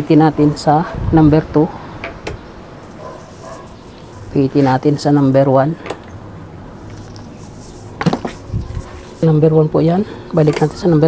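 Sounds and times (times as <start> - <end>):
electric fan humming: 0.0 - 11.0.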